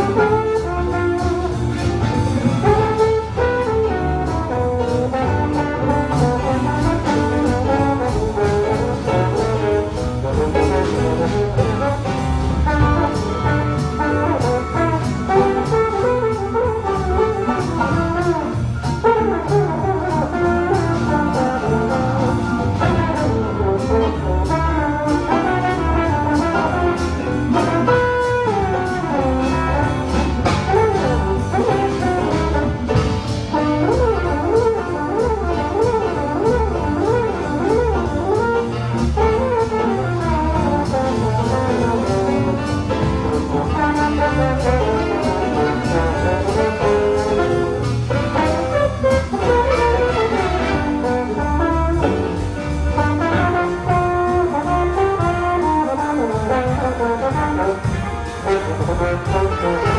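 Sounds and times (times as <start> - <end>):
big band swing accompaniment: 0.0 - 59.9
jazz trombone solo: 0.0 - 59.9.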